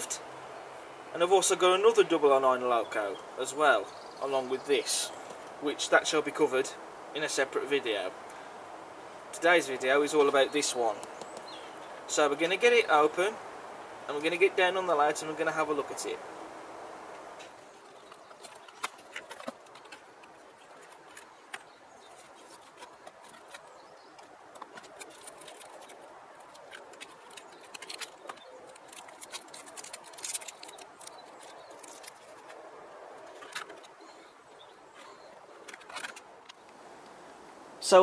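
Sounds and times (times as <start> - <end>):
steady background hiss: 0.0 - 38.0
plastic packaging crinkling: 17.5 - 34.3.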